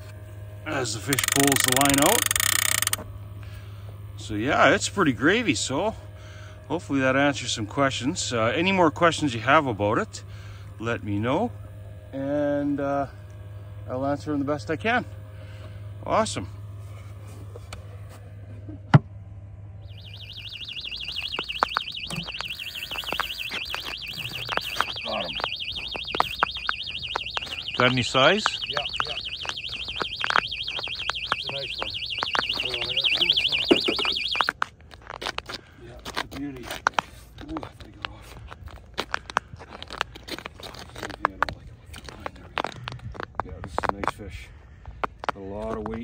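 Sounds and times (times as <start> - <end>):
warbling electronic alarm: 0.0 - 17.2, 19.7 - 34.6
steady low rumble: 0.0 - 46.0
crunches and scrapes on ice: 34.5 - 46.0.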